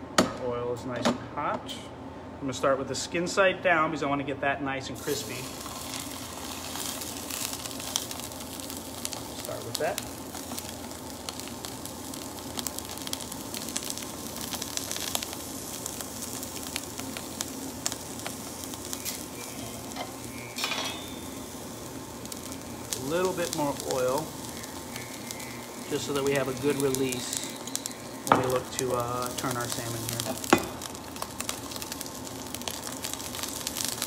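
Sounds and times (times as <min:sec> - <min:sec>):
fish sizzling in a pan: 0:05.0 - 0:34.0
oil popping and crackling: 0:05.2 - 0:34.0.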